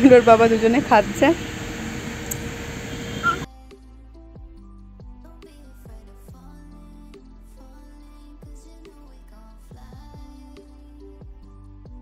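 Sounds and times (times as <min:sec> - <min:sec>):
steady background noise: 0:00.0 - 0:03.5
quiet instrumental music: 0:03.2 - 0:12.0.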